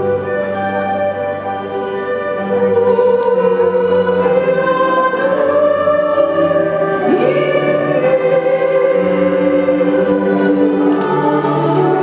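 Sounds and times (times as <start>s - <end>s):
choir singing held chords: 2.4s - 12.0s.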